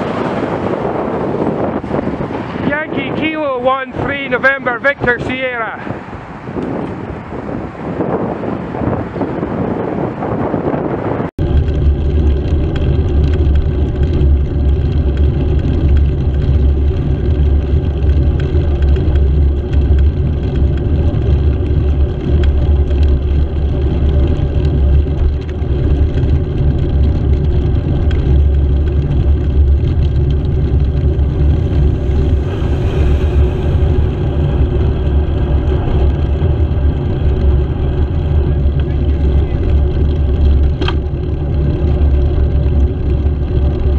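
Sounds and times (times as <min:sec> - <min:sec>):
two-wheeler riding drone: 0:00.0 - 0:43.9
wind on microphone: 0:00.0 - 0:43.9
lorry passing: 0:28.6 - 0:40.6.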